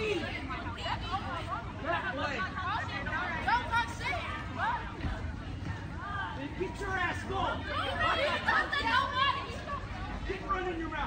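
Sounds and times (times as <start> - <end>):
several voices chattering: 0.0 - 11.0.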